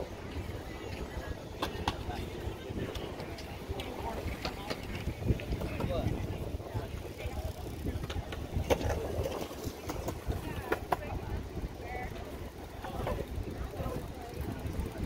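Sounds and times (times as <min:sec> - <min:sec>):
wind rumbling on microphone: 0:00.0 - 0:15.0.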